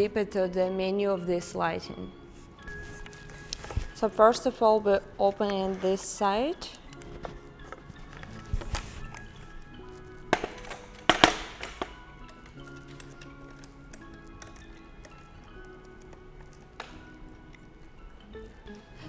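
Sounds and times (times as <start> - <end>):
background music: 0.0 - 19.0
handling clicks and knocks: 6.7 - 17.7.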